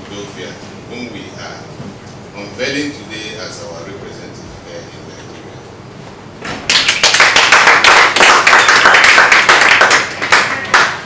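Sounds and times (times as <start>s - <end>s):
people clapping: 6.6s - 11.0s.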